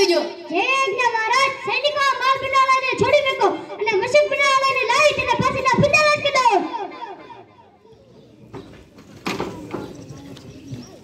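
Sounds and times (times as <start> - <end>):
child speaking: 0.0 - 6.9.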